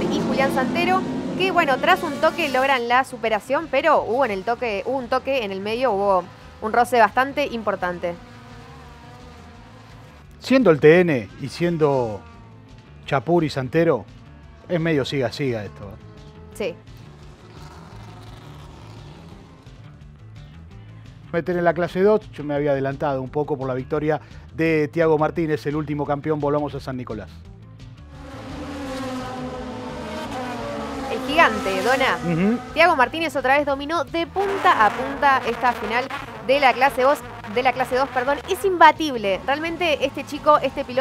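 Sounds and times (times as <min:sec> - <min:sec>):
distant racing car engines: 0:00.0 - 0:21.2, 0:28.0 - 0:41.0.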